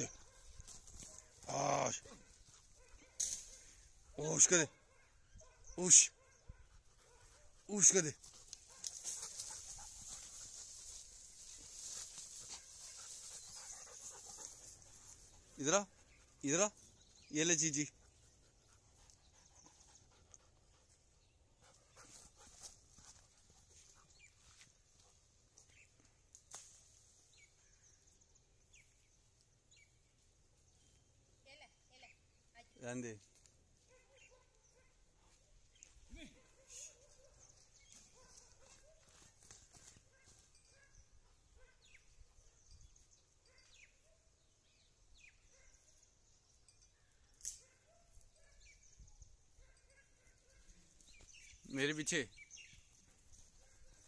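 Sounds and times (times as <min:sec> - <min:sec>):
faint outdoor ambience: 0:00.0 - 0:54.0
rustling through grass: 0:07.7 - 0:15.6
dog panting: 0:12.4 - 0:17.1, 0:17.9 - 0:24.2.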